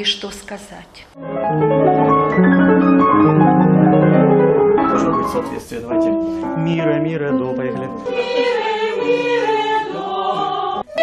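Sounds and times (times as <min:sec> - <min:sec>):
piano playing: 0:01.1 - 0:11.0.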